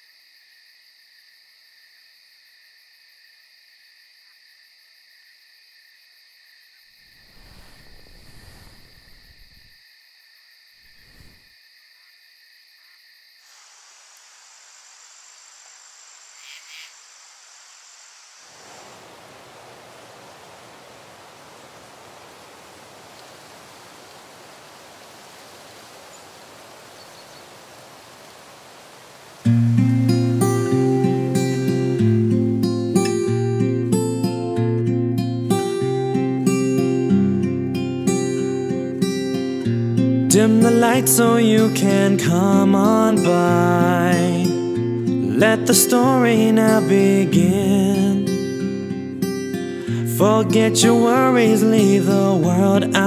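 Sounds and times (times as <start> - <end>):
insects chirring: 0.0 - 53.0
steady hiss: 7.0 - 9.8, 10.8 - 11.5, 13.3 - 34.5
low rustles: 7.2 - 9.8, 10.9 - 11.4
strummed acoustic guitar: 29.5 - 53.0.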